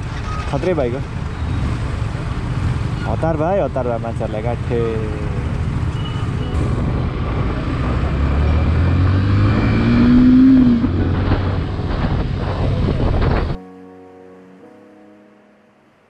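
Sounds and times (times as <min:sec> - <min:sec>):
road noise: 0:00.0 - 0:13.6
motorcycle engine revving: 0:05.0 - 0:13.6
soft music: 0:06.5 - 0:09.2, 0:10.1 - 0:16.0.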